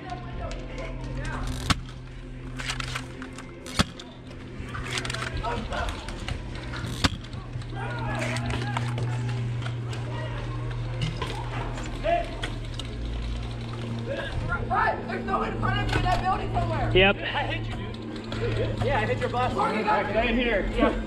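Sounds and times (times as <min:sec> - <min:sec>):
steady low hum: 0:00.0 - 0:21.0
distant shouting voices: 0:04.4 - 0:21.0.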